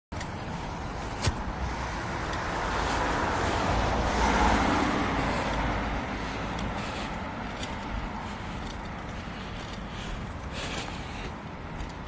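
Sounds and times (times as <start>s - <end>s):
low traffic rumble: 0.1s - 12.0s
car passing: 0.2s - 12.0s.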